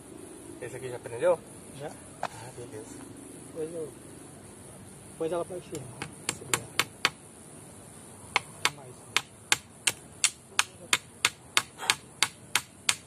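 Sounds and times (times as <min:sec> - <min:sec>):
steady high-pitched hiss: 0:00.0 - 0:13.0.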